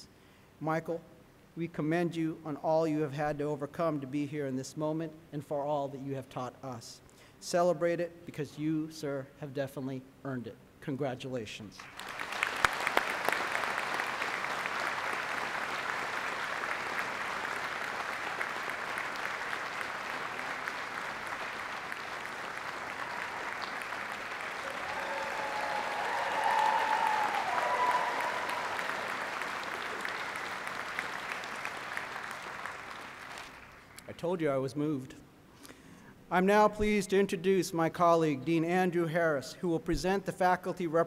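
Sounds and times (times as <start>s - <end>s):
audience applauding: 11.8s - 34.0s
voices cheering: 22.9s - 30.7s.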